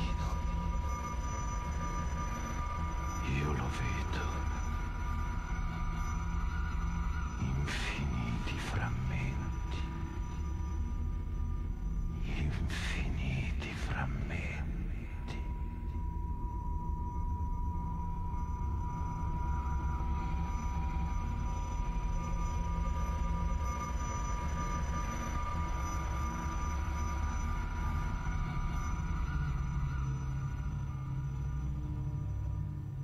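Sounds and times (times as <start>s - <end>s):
low droning ambient music: 0.0s - 33.0s.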